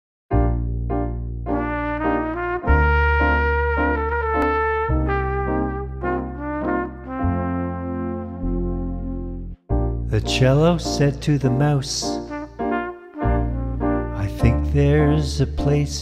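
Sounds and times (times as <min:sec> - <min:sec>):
low bass notes: 0:00.3 - 0:16.0
trumpet melody: 0:01.5 - 0:16.0.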